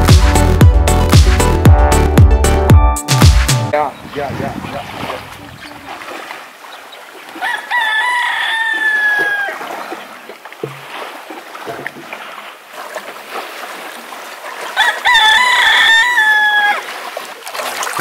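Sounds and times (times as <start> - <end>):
rooster crowing: 7.4 - 9.7, 14.7 - 16.9.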